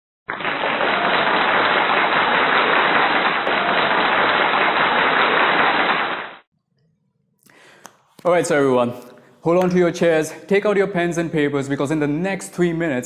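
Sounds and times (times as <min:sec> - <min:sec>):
many hands clapping: 0:00.3 - 0:06.5.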